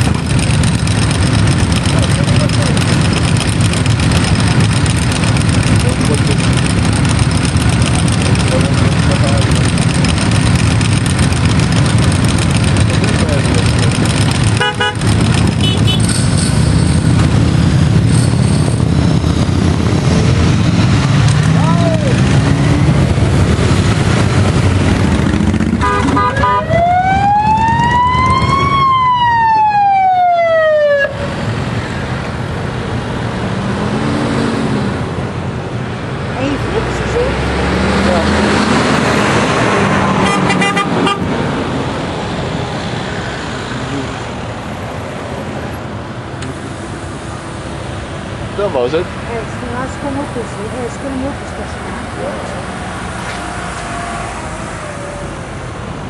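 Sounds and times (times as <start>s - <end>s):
motorcycle and vehicle engines: 0.0s - 56.0s
emergency siren: 26.1s - 31.4s.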